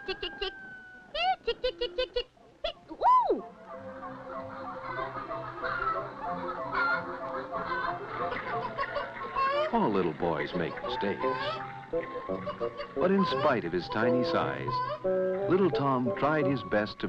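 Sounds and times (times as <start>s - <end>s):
orchestral background music: 3.4s - 17.0s.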